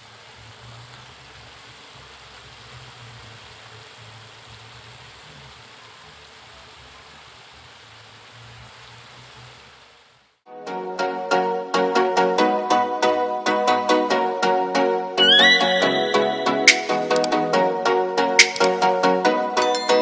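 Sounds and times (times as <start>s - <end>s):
food sizzling in a wok: 0.0s - 10.4s.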